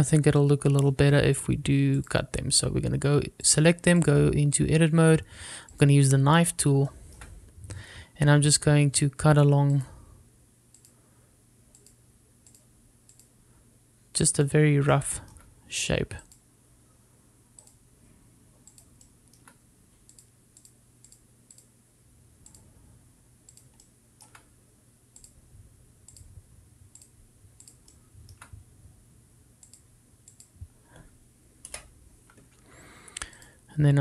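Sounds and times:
low steady hum: 0.0s - 34.0s
computer mouse clicks: 10.7s - 11.0s, 11.7s - 13.3s, 17.6s - 17.8s, 18.6s - 21.7s, 22.4s - 22.7s, 23.5s - 24.5s, 25.2s - 25.4s, 26.1s - 26.3s, 26.9s - 28.6s, 29.6s - 32.5s, 33.2s - 33.5s.

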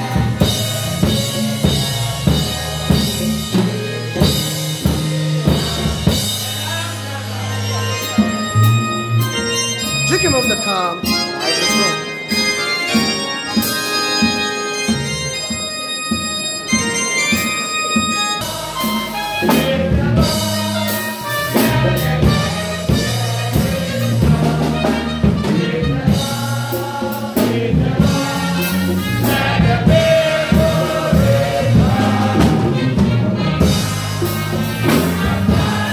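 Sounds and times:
drum kit beat: 0.0s - 7.1s, 8.0s - 35.9s
bass: 0.0s - 35.9s
congregation singing: 0.0s - 35.9s
keyboard chords: 0.0s - 35.9s.

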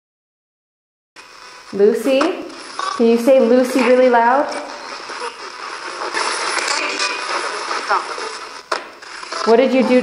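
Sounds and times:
choppy radio static: 1.2s - 10.0s
radio sound fragments: 1.2s - 10.0s.

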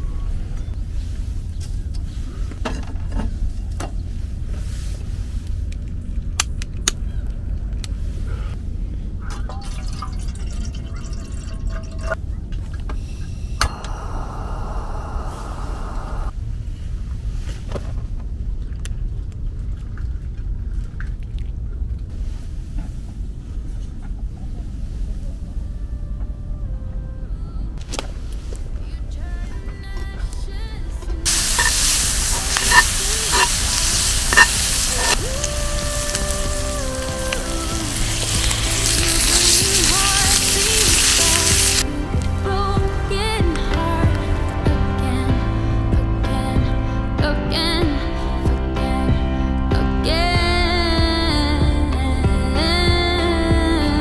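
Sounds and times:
water poured into kettle: 9.3s - 12.2s
stew sizzling and crackling in skillet: 31.3s - 42.4s.

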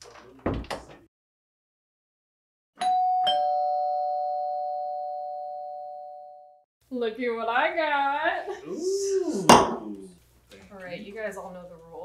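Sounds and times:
two-note doorbell chime: 2.8s - 6.6s.

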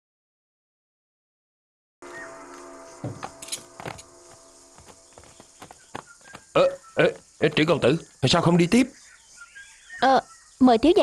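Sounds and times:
horse hooves clip-clopping on dirt: 3.0s - 7.9s.

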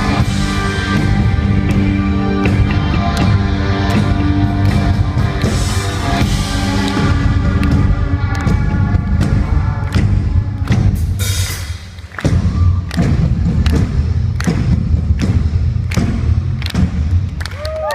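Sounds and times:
live rock band: 0.0s - 17.9s.

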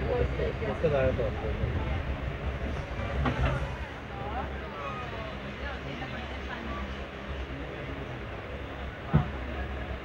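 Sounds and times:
train coaches rumbling: 0.0s - 10.0s.

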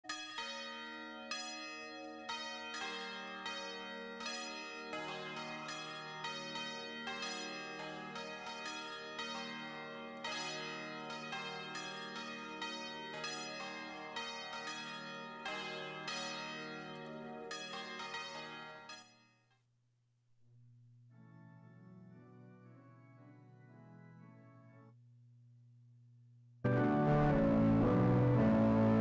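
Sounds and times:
bells ringing: 0.1s - 19.3s.

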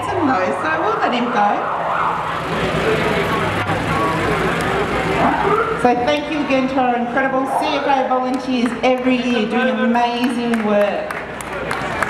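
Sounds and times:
voices: 0.0s - 12.0s
vehicle engine driving past: 1.6s - 7.6s.

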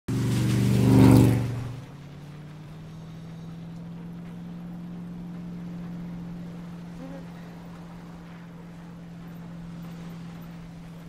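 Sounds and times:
van engine driving past: 0.1s - 11.0s.

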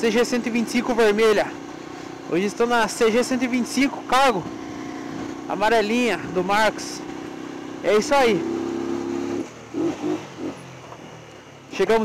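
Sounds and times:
motorcycle engine slowing: 0.0s - 12.0s.

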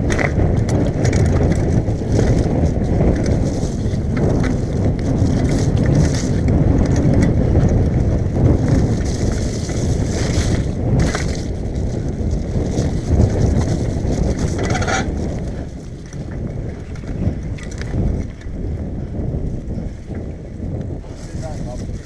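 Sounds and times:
bike clicking and rattling: 0.0s - 22.0s
wind on microphone: 0.0s - 22.0s.

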